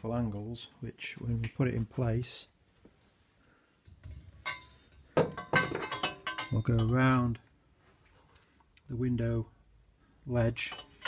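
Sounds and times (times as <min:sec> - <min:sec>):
pipe handling noise: 0:03.8 - 0:07.3, 0:10.5 - 0:11.0
metallic clink with ring: 0:05.4 - 0:06.9.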